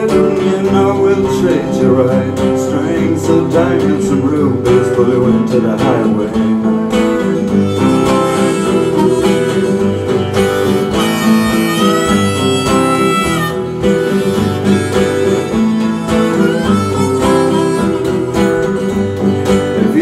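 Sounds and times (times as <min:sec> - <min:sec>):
acoustic guitar strumming: 0:00.0 - 0:20.0
harmonica playing: 0:07.1 - 0:20.0.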